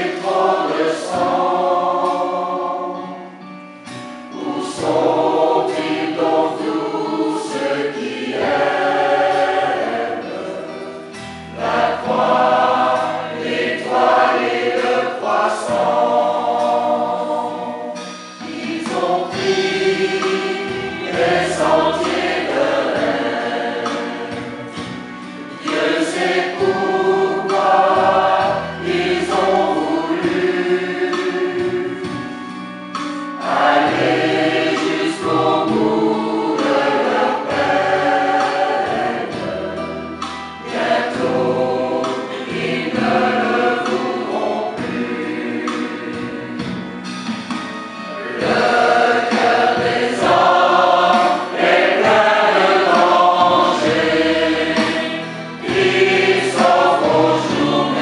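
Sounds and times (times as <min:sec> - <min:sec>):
mixed choir singing: 0:00.0 - 0:58.0.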